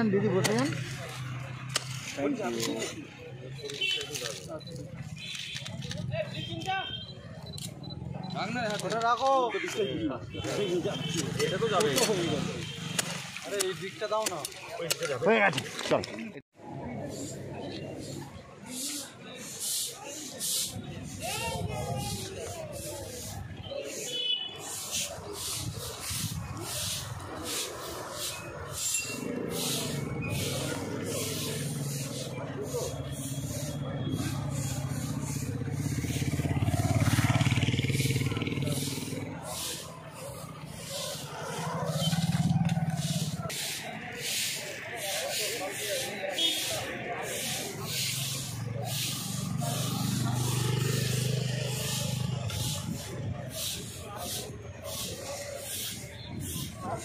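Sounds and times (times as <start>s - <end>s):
broom sweeping pavement: 0.1s - 15.8s, 16.6s - 57.0s.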